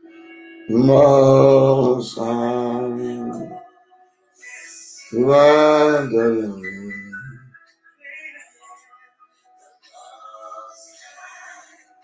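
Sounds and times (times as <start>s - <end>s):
man chanting sung notes: 0.7s - 3.7s, 4.5s - 7.5s.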